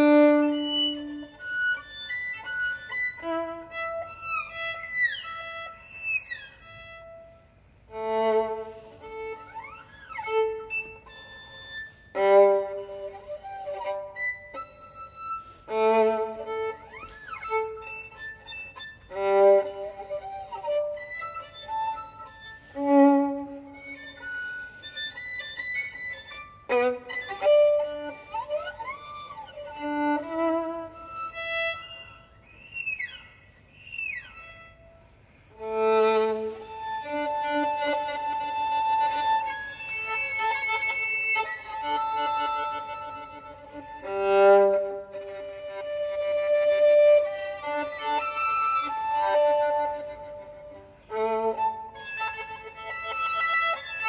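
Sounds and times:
solo violin playing: 0.0s - 33.2s, 34.0s - 54.0s.

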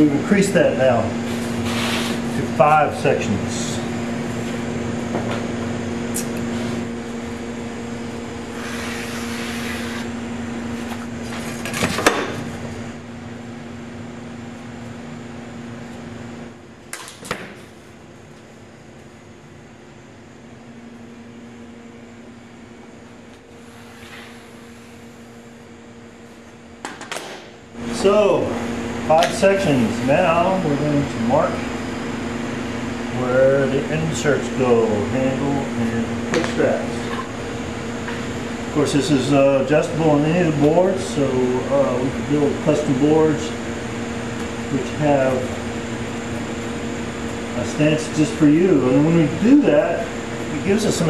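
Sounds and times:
shop equipment humming: 0.0s - 51.0s
brief scrape on table: 1.6s - 2.2s.

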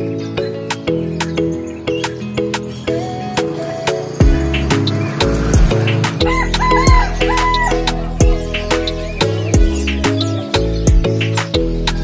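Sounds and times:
background music with steady beat: 0.0s - 12.0s
rooster crowing: 6.2s - 8.2s.

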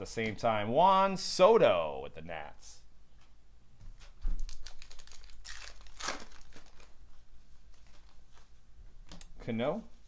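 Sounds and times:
card pack wrapper crinkling and tearing: 4.4s - 7.0s.

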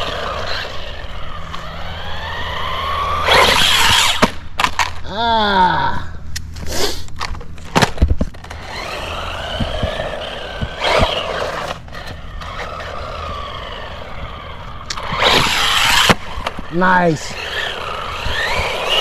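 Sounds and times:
electric motor whine: 0.0s - 4.4s, 8.3s - 19.0s
tyre noise on asphalt: 0.0s - 5.1s, 6.5s - 16.8s, 17.4s - 19.0s.

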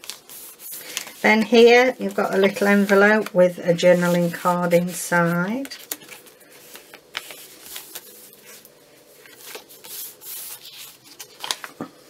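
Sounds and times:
paper rubbing and rustling: 0.0s - 11.8s.

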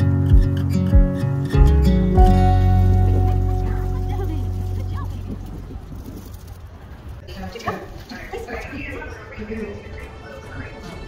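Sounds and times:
guitar music: 0.0s - 5.8s
low uneven outdoor rumble: 2.1s - 9.9s.

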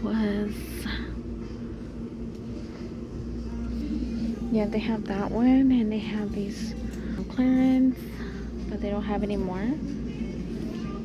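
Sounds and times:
large store background hum: 0.0s - 11.0s.

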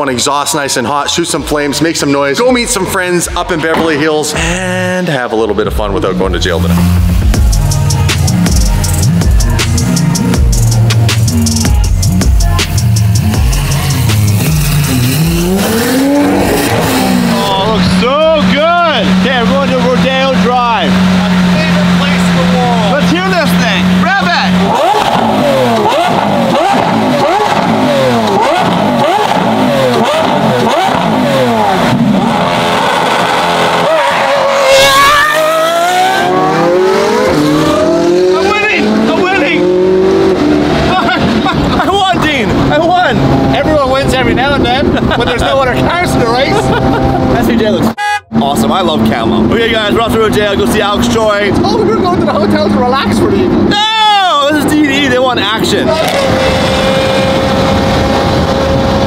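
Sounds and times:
sports car engine revving: 1.2s - 59.0s
car accelerating away: 5.9s - 59.0s.

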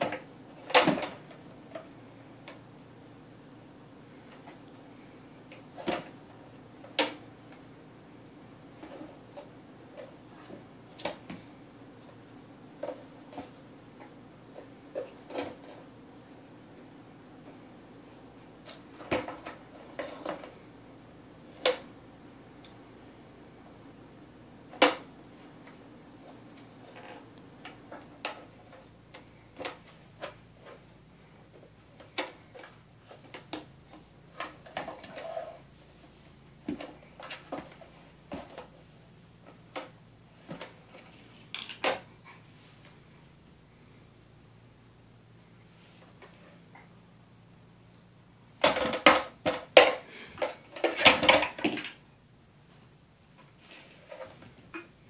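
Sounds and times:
plastic toys knocking and clacking: 41.5s - 42.1s, 48.6s - 52.0s.

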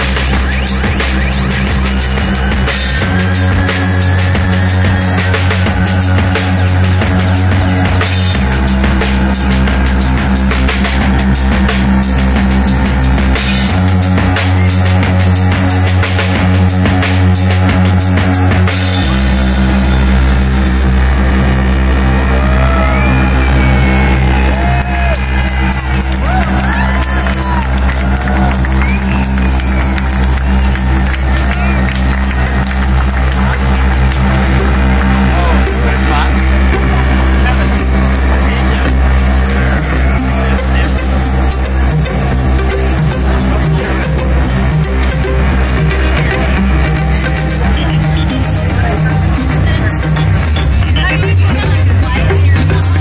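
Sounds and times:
deep bass synth drone: 0.0s - 53.0s
drums: 0.0s - 53.0s
sustained synth tones: 0.0s - 53.0s.

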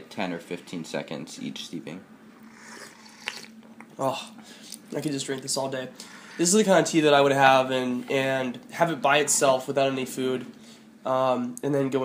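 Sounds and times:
person sipping tea: 2.4s - 3.6s.

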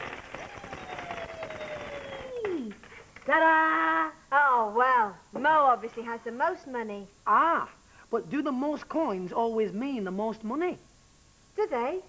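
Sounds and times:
whistle-like tone sliding down: 0.4s - 2.6s.

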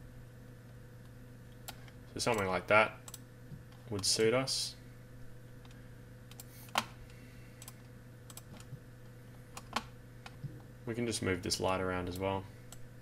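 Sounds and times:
low electrical hum: 0.0s - 13.0s.

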